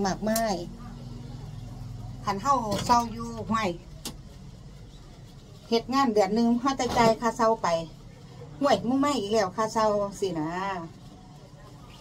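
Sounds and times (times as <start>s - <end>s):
woman speaking: 0.0s - 1.2s, 2.1s - 4.0s, 5.6s - 11.0s.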